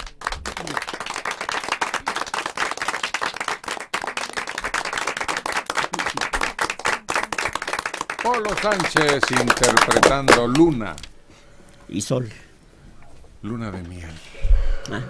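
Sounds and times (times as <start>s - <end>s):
people applauding: 0.0s - 11.0s.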